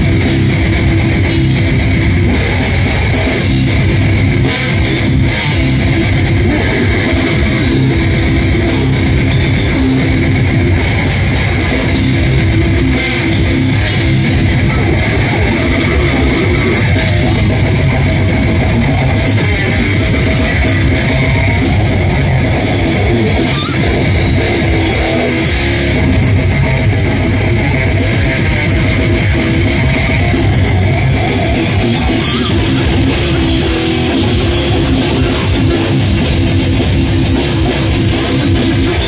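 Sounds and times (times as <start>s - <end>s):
death metal band playing live: 0.0s - 39.0s.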